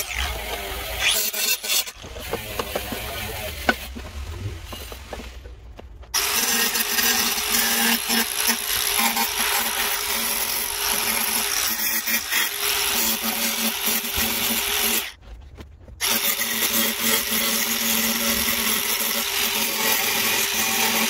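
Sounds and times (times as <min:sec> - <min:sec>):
angle grinder cutting steel: 0:00.0 - 0:05.3, 0:06.2 - 0:15.2, 0:16.0 - 0:21.0.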